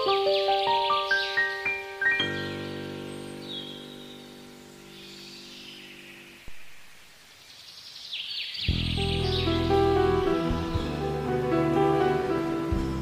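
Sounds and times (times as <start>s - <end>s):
loud piano piece: 0.0s - 5.0s, 8.7s - 13.0s
piano chord: 0.0s - 5.4s, 8.7s - 13.0s
birds chirping: 0.0s - 13.0s.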